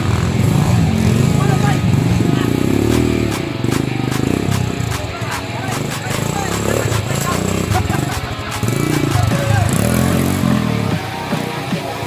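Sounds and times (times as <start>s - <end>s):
crowd voices: 0.0s - 12.0s
dirt bike engine revving: 0.0s - 12.0s
rock music: 0.0s - 12.0s.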